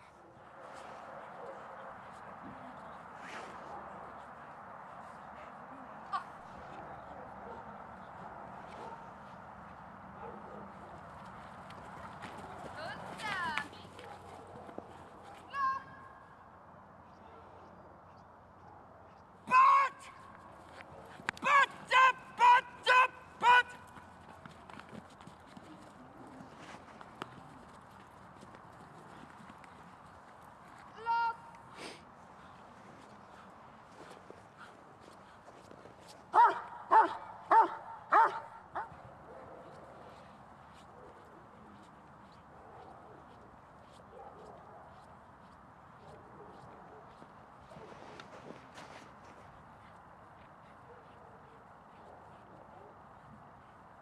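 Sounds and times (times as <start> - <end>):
large dog barking: 7.1 - 7.8, 8.8 - 9.1, 10.2 - 10.8, 36.3 - 39.8
dog running over snow: 10.7 - 15.5.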